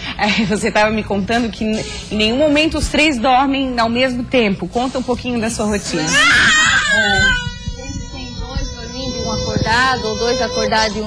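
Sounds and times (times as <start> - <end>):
toddler crying: 6.0 - 11.0.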